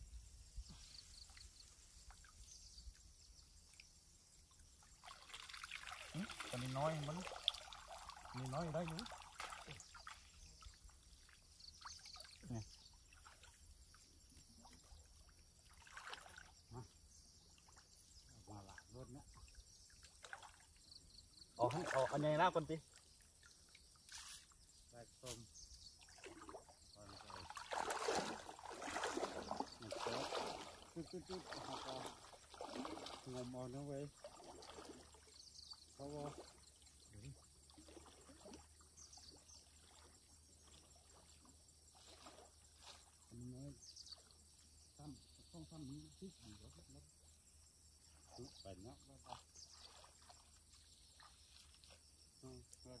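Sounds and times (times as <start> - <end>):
small water splashes: 0.9 - 45.4, 46.2 - 53.0
water trickling and dripping: 1.2 - 45.7, 48.3 - 53.0.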